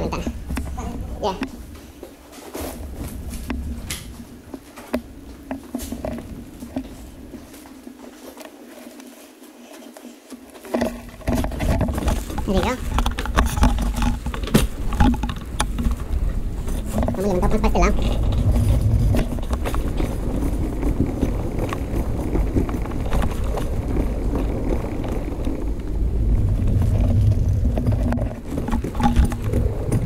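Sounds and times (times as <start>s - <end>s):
low rumble: 0.0s - 1.8s, 2.7s - 5.4s, 11.9s - 30.0s
footsteps: 0.0s - 30.0s
plastic wrapping rustling: 0.0s - 30.0s.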